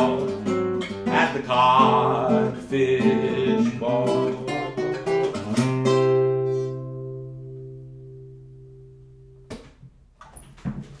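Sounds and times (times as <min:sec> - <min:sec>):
classical guitar playing: 0:00.0 - 0:09.5
soft knocks and rustles: 0:09.6 - 0:11.0.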